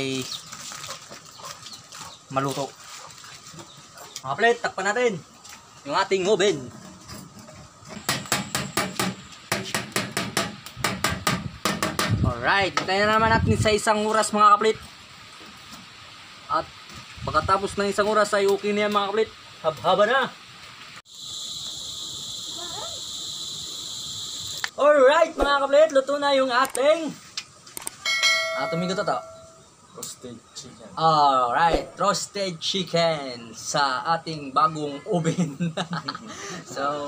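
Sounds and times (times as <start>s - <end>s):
rapid sharp clattering knocks: 8.0s - 12.2s
high-pitched insect chorus: 21.1s - 37.0s.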